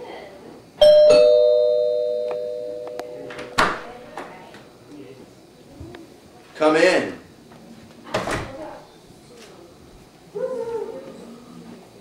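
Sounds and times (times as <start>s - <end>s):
two-tone doorbell chime: 0.8s - 3.7s.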